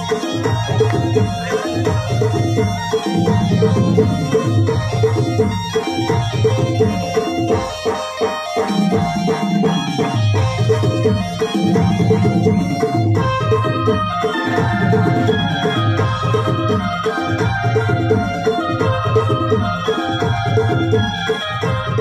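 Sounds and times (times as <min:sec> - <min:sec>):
electronic drum beat: 0:00.0 - 0:22.0
electronic keyboard melody: 0:00.0 - 0:22.0.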